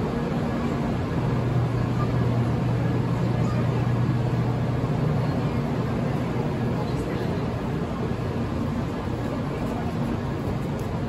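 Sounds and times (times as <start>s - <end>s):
train electric hum: 0.0s - 11.0s
train rumbling: 0.0s - 11.0s.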